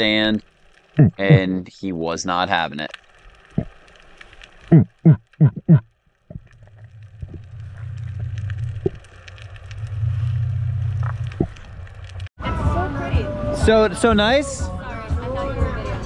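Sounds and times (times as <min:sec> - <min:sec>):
faint crackling: 0:00.0 - 0:12.3
diver grunting underwater: 0:01.0 - 0:01.4, 0:04.7 - 0:07.8
steady low hum: 0:04.7 - 0:12.3.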